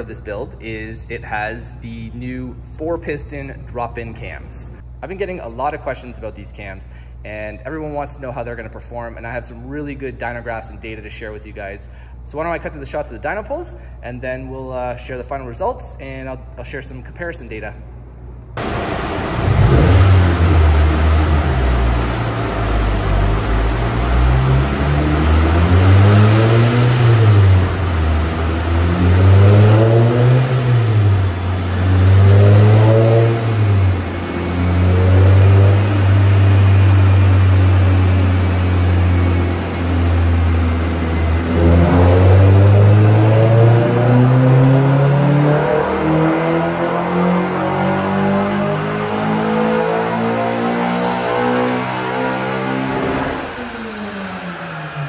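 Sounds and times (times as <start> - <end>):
car engine revving on dyno: 18.6 - 55.0.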